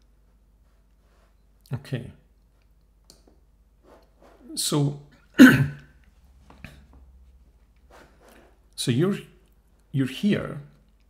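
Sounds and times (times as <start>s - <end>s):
man coughing: 5.4s - 5.9s.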